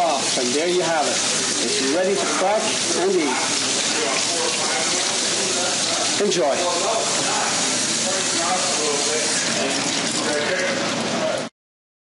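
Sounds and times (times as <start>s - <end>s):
tap water running into steel sink: 0.0s - 11.5s.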